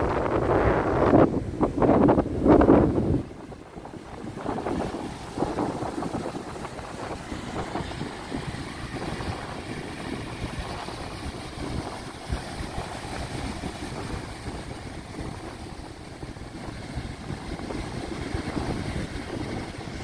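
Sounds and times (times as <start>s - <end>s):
breaking surf: 0.0s - 20.0s
wind buffeting microphone: 0.0s - 20.0s.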